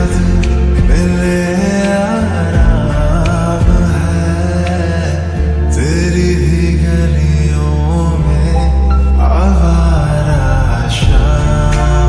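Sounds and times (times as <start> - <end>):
slowed reverb-heavy lofi pop song: 0.0 - 12.0.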